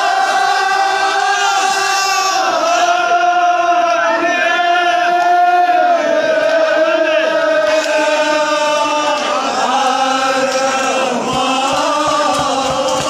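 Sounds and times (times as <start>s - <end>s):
group chanting in unison: 0.0s - 13.0s.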